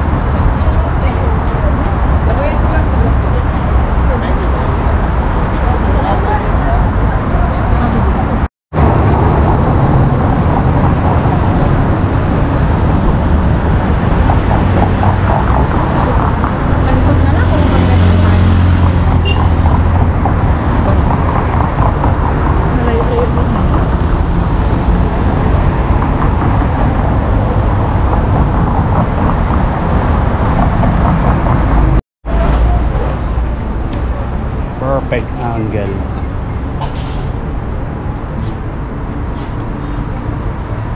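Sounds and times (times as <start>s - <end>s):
road traffic noise: 0.0s - 40.9s.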